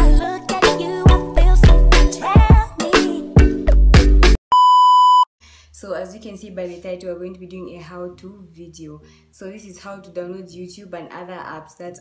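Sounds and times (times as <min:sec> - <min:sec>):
music: 0:00.0 - 0:04.4
electronic beep: 0:04.5 - 0:05.3
woman speaking: 0:05.8 - 0:12.0.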